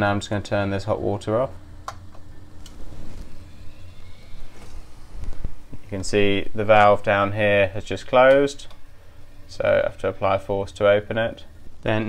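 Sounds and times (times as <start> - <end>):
central heating hum: 0.0 - 12.0.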